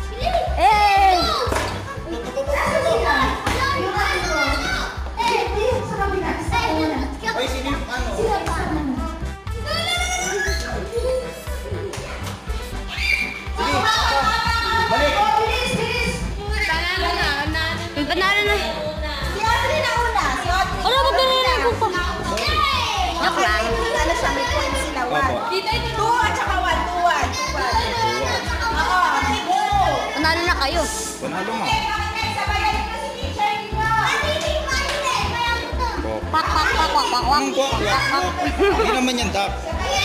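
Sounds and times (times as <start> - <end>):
music with steady bass beat: 0.0 - 25.0
children shouting and chattering: 0.0 - 40.0.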